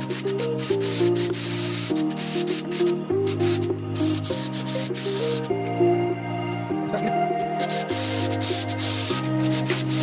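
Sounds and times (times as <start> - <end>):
spray gun hissing: 0.0 - 5.7, 7.4 - 10.0
background music with held notes: 0.0 - 10.0.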